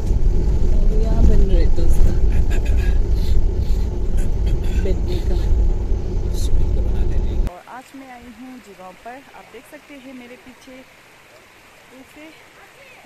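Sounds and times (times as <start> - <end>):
car rumbling over dirt track: 0.0 - 7.5.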